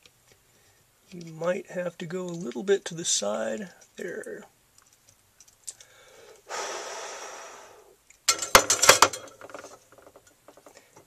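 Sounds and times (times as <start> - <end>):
person exhaling: 5.8 - 8.0.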